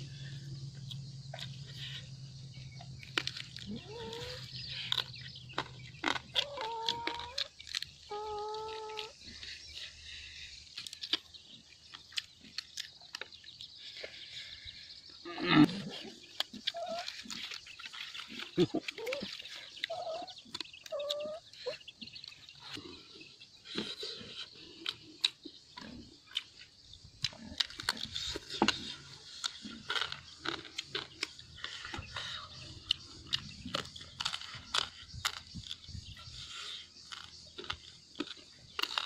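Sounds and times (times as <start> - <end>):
wet chewing and lip-smacking: 2.7 - 14.5, 15.7 - 23.0, 23.6 - 39.0.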